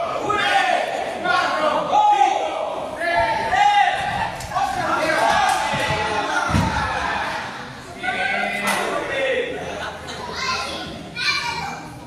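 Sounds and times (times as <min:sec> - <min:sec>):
children shouting: 0:03.0 - 0:09.4, 0:10.1 - 0:12.0.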